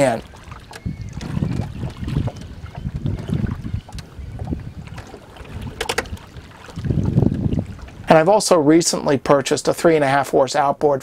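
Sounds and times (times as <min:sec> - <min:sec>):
wind on microphone: 0:00.0 - 0:08.5
oar swishing and churning water: 0:00.0 - 0:10.1.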